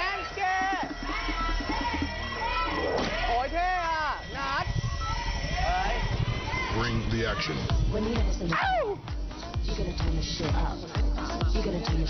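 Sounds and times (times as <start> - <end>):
background music with bass beat: 0.0 - 12.0
high-pitched voices squealing: 8.5 - 9.0.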